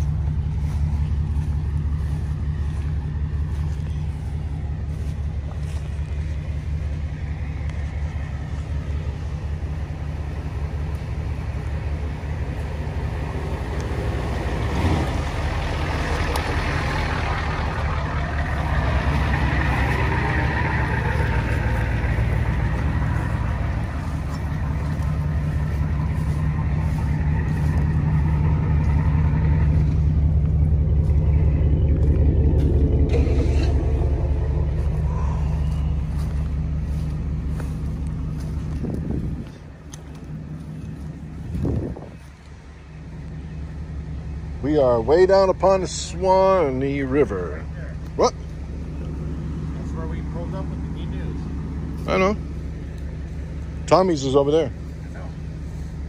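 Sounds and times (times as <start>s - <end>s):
vehicle engine and road rumble: 0.0s - 56.0s.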